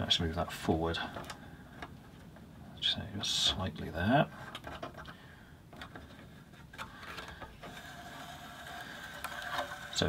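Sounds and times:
faint clicks of metal parts: 0:01.0 - 0:02.5, 0:04.3 - 0:10.0.

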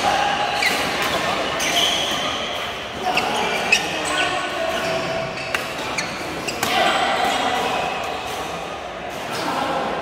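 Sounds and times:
shoes squeaking on court floor: 0:00.4 - 0:06.8.

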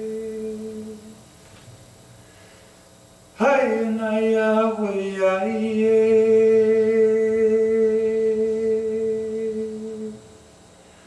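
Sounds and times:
man singing long wordless note: 0:00.0 - 0:01.1, 0:03.4 - 0:10.4.

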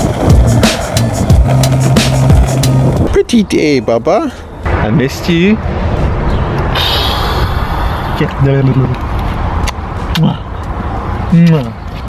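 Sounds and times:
outdoor rumble: 0:00.0 - 0:03.7.

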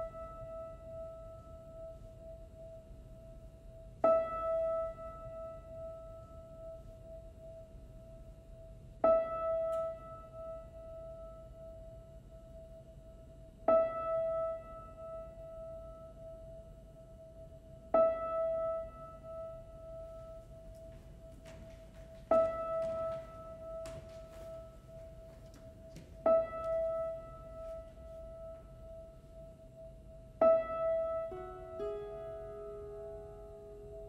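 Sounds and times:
high piano note ringing: 0:30.4 - 0:34.0.

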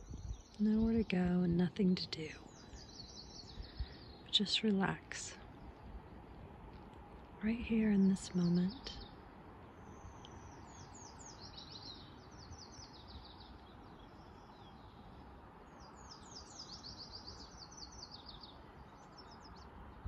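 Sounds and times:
faint steady background hiss: 0:00.0 - 0:20.0
songbird singing: 0:00.0 - 0:20.0.

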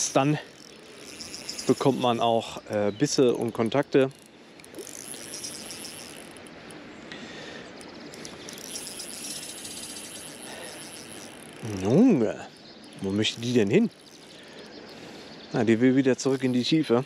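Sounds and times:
fishing reel whirring: 0:00.0 - 0:06.9, 0:07.6 - 0:12.2, 0:12.8 - 0:14.6.

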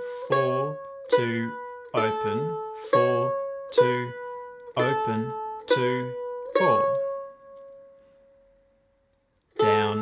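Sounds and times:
mandolin note ringing: 0:00.0 - 0:08.8.

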